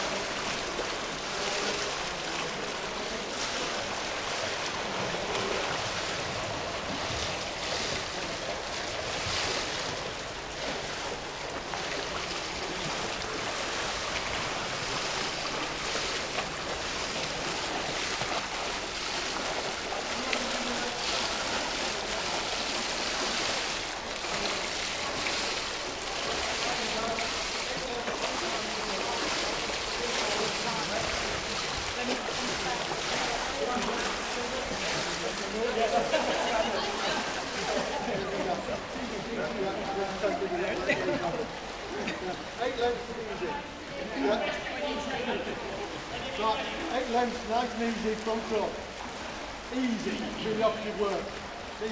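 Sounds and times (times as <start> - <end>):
swimmer splashing water: 0.0 - 51.9.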